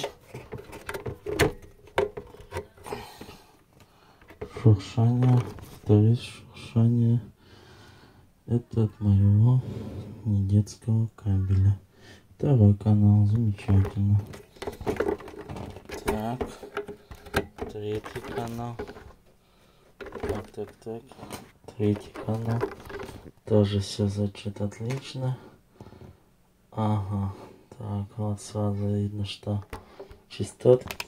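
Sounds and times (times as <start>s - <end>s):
handling clicks and rustles: 0.0s - 5.9s, 13.3s - 19.3s, 19.9s - 23.5s
crackling from faulty microphone cable: 13.3s - 23.5s, 29.5s - 31.0s.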